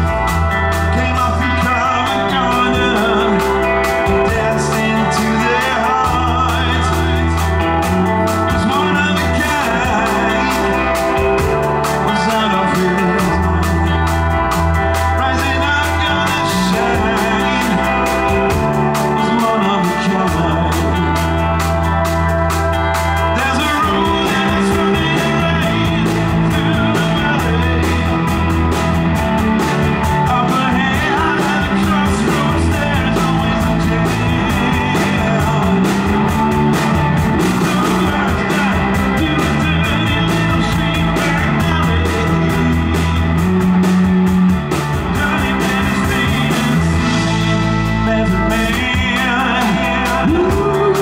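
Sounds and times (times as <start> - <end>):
blues-rock band playing: 0.0 - 51.0.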